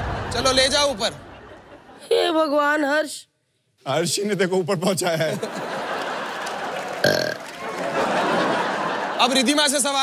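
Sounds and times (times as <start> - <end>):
studio audience noise: 0.0 - 2.5, 5.0 - 10.0
low burp-like sound: 7.0 - 7.5.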